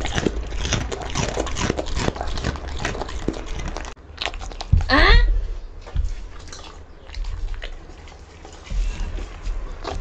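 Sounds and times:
dog chewing radish crunches: 0:00.0 - 0:04.9, 0:05.8 - 0:10.0.

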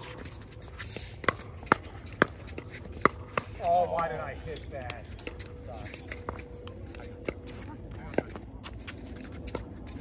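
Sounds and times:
paddles hitting pickleball: 0:00.8 - 0:08.4.

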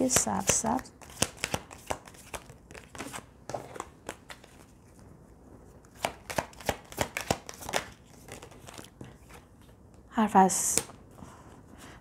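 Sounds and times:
soft card rustling: 0:00.0 - 0:10.0
cards clicking while shuffled: 0:00.1 - 0:04.6, 0:05.9 - 0:09.4.

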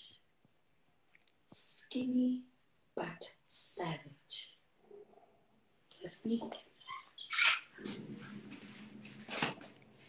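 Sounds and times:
woman speaking: 0:01.6 - 0:04.5, 0:06.0 - 0:07.1.

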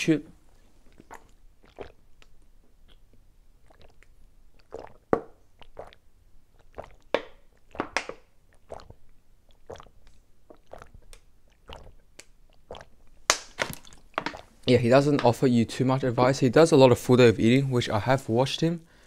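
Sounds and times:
person gulping water: 0:00.8 - 0:14.6
mouth clicks: 0:00.9 - 0:06.0.

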